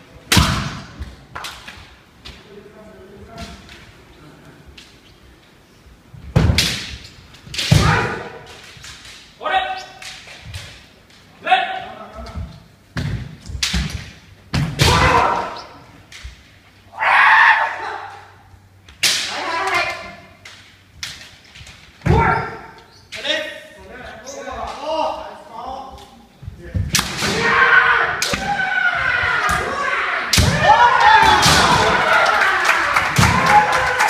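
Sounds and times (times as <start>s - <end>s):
bamboo swords clattering: 6.4s - 11.4s, 18.9s - 23.2s, 26.8s - 27.6s
loud drawn-out shout: 16.9s - 18.4s, 27.3s - 34.0s
bamboo sword strikes: 26.9s - 27.5s.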